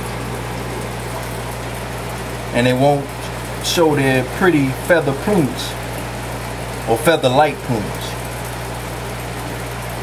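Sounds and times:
water and bubbles hissing: 0.0 - 6.9
aquarium air pump humming: 0.0 - 10.0.

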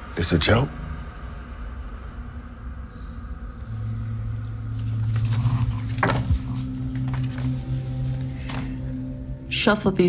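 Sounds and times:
low ominous drone: 0.0 - 10.0.

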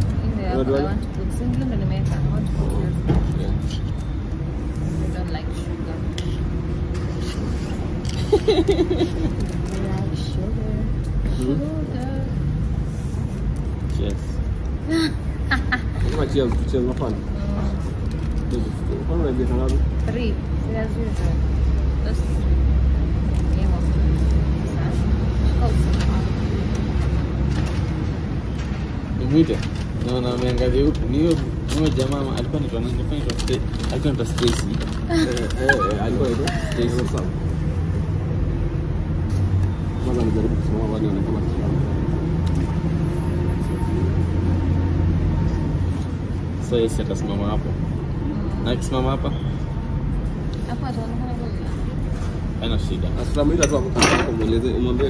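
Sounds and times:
vehicle engine rumbling: 0.0 - 55.0.

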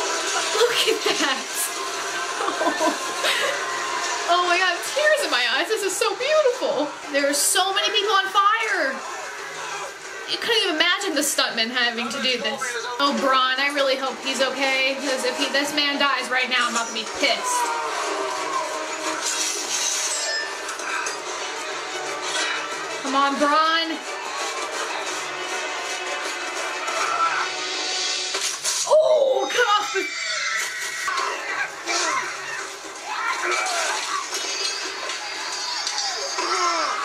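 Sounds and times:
music: 0.0 - 37.0
men shouting and screaming: 17.4 - 19.2, 26.8 - 27.8, 29.8 - 34.4
battle music: 21.4 - 28.6.

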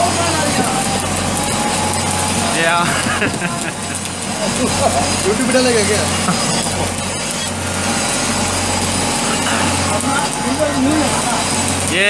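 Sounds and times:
steady low hum: 0.0 - 12.0
welding arc crackling and hissing: 0.0 - 12.0.

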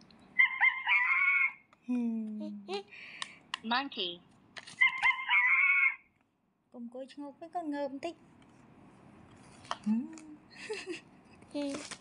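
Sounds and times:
toy speaker animal call: 0.4 - 1.6, 4.8 - 6.0.

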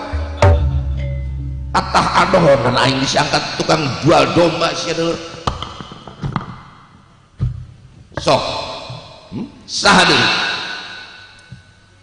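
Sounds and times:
sharp wooden knocks: 5.4 - 6.7.

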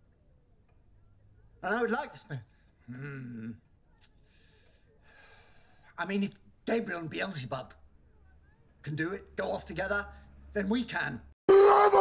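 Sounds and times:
man breathing faintly: 4.2 - 6.0.

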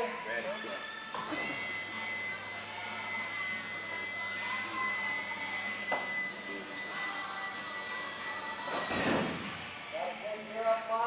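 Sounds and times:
hydraulic high whine: 1.1 - 9.8.

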